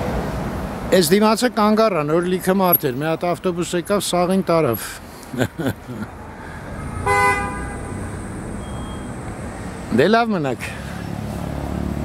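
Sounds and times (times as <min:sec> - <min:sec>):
street traffic rumble: 0:00.0 - 0:12.0
car horn toot: 0:06.9 - 0:09.1.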